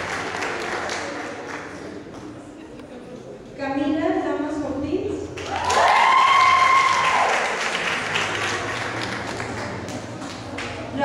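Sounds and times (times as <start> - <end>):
audience applauding and cheering: 0.0 - 2.0, 5.4 - 10.9.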